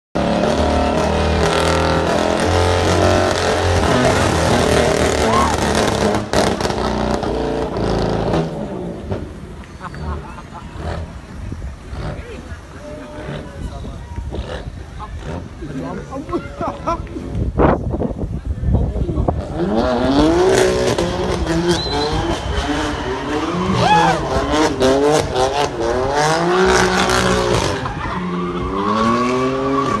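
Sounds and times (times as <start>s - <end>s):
car engine revving hard: 0.2s - 9.2s, 19.4s - 30.0s.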